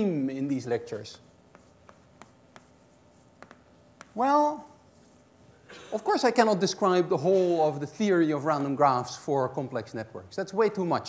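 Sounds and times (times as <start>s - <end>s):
chalk strokes on blackboard: 0.6s - 5.4s.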